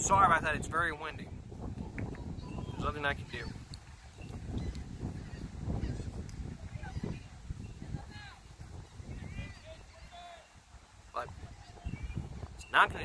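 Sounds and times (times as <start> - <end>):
wind buffeting microphone: 0.0 - 13.0
bird calls: 1.8 - 13.0.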